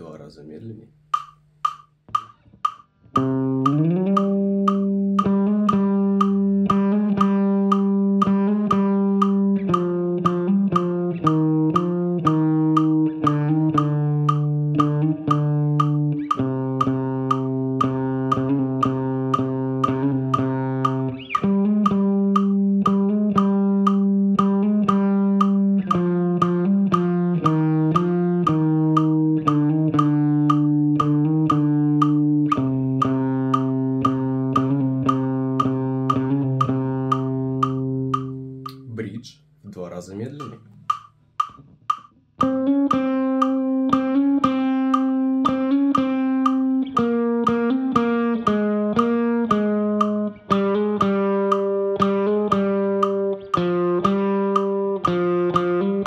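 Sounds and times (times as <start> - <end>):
electric guitar riff: 3.1 - 38.9, 42.4 - 56.0.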